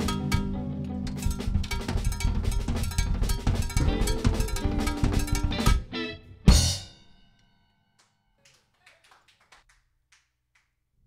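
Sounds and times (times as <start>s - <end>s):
faint hand claps: 8.0s - 10.8s.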